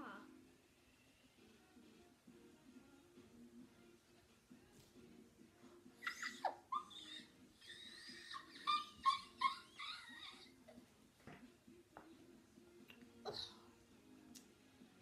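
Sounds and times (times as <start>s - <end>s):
faint background music: 0.0s - 15.0s
boy squealing and yelping: 6.0s - 10.8s.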